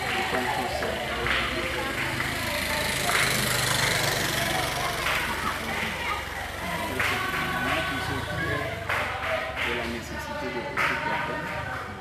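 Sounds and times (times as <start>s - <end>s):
murmur of voices: 0.0s - 12.0s
small motorcycle engine running: 0.0s - 12.0s.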